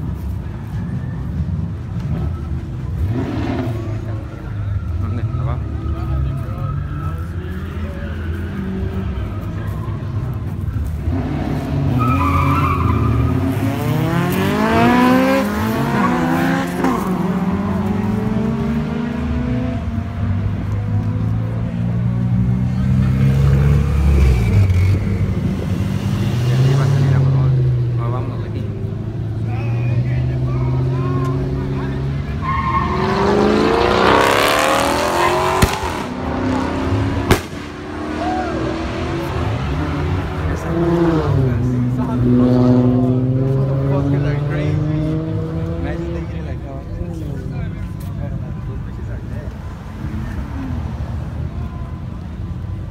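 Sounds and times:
car engines accelerating: 0.0s - 52.9s.

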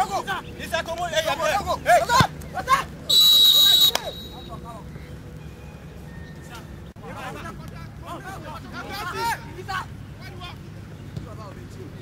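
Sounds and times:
referee's whistle blast: 3.1s - 4.6s.

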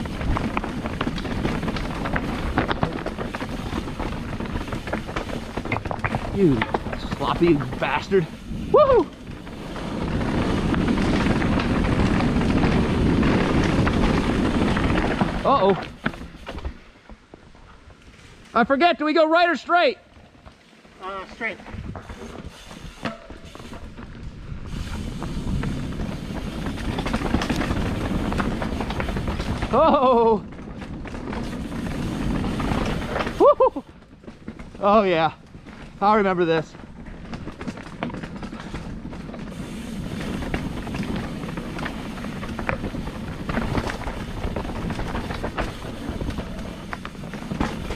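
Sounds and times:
bike tyres rumbling over rocky trail: 0.0s - 47.9s
rider whooping: 8.6s - 9.3s, 33.2s - 33.9s.

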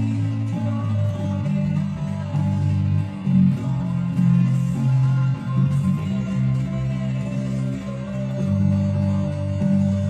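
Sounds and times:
electric bass guitar low notes: 0.0s - 10.0s.

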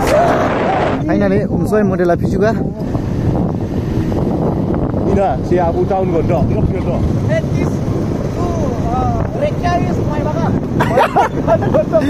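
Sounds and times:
wind buffeting microphone: 0.0s - 12.0s
motorbike engine and road rumble: 2.6s - 12.0s.

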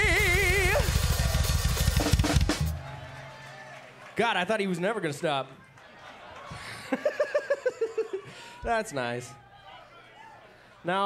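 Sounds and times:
rock drum roll on kick and snare: 0.0s - 2.9s.

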